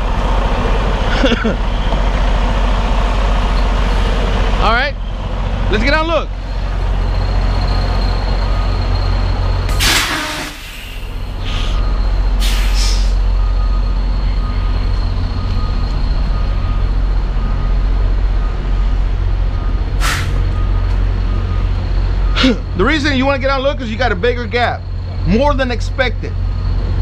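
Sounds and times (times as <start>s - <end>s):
diesel engine idling: 0.0s - 27.0s
air brake hisses: 9.7s - 13.2s, 20.0s - 20.4s.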